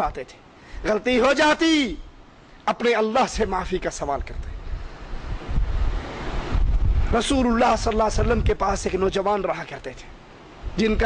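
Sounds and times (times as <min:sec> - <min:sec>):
air rumbling on microphone: 0:03.4 - 0:09.4.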